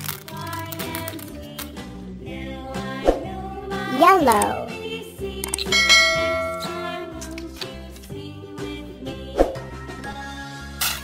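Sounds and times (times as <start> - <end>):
children's song backing track: 0.3 - 10.8
bell chime: 5.7 - 7.4.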